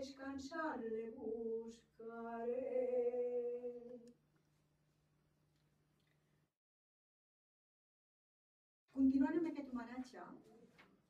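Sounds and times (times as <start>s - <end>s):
woman singing a long note: 0.9s - 4.1s.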